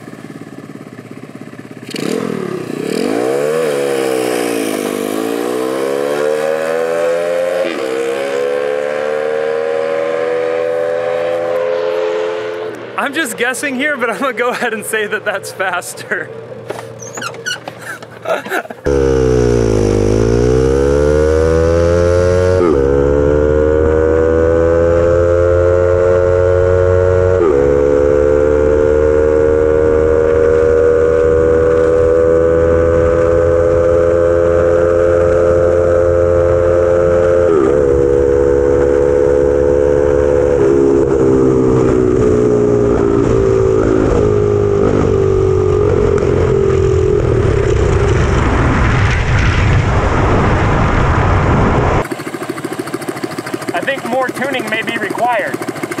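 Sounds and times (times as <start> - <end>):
go-kart engine at full throttle: 0.0 - 15.0, 15.8 - 56.0
rushing noise: 47.3 - 52.2.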